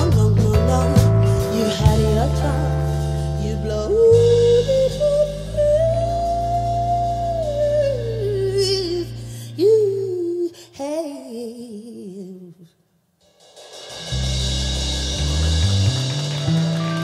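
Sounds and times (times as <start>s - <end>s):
bass keys and drums: 0.0s - 9.3s, 14.0s - 17.0s
woman singing: 0.0s - 12.8s.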